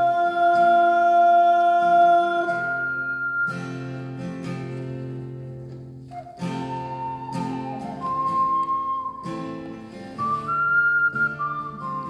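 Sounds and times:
strummed acoustic guitar chords: 0.0 - 12.0
ocarina melody: 1.8 - 12.0.

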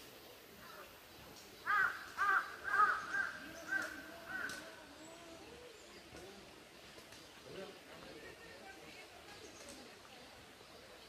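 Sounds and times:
crow cawing: 1.7 - 4.6.

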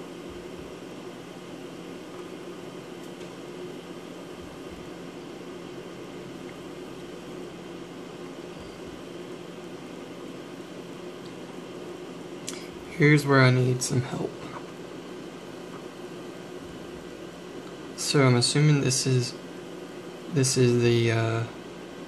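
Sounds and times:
fan hissing: 0.0 - 22.0.

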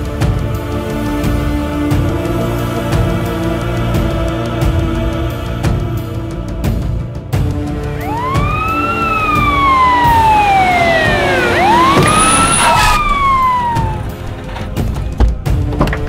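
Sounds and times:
dramatic film music: 0.0 - 16.0
police siren wailing: 7.9 - 14.9.

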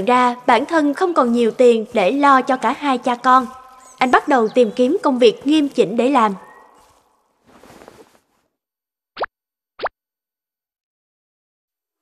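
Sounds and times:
cartoon plop sound effects: 9.2 - 10.0.

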